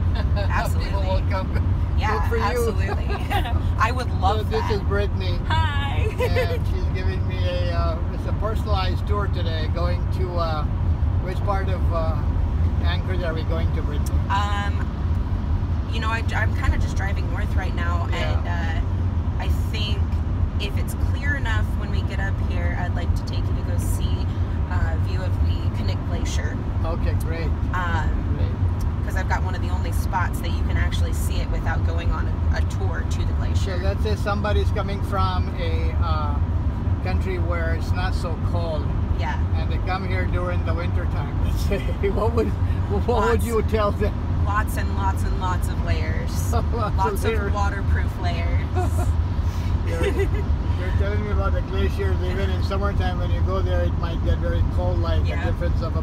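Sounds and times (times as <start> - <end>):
car road and engine drone: 0.0 - 56.0
people conversing: 0.0 - 56.0.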